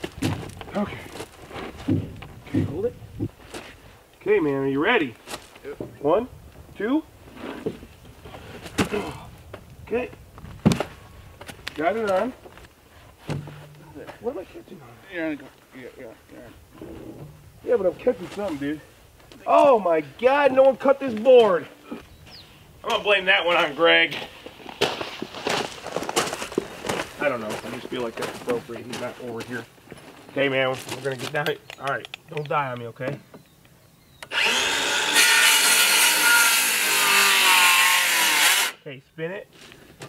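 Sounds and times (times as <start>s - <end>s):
footsteps on gravel: 0.0s - 3.8s, 23.5s - 31.4s
wood scraping rustle: 0.0s - 4.2s, 5.0s - 6.0s, 7.2s - 19.8s, 23.4s - 31.5s
sharp wooden knock: 13.3s - 13.8s.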